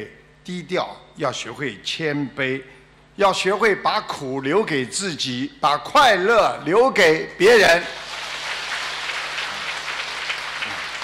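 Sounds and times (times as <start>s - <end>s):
audience applauding: 7.8s - 11.0s.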